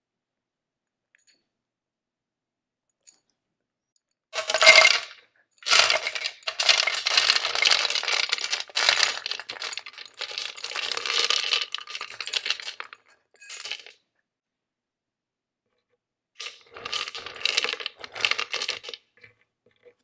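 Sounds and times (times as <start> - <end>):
dry kibble rattling and pouring: 4.4 - 13.9, 16.4 - 19.0.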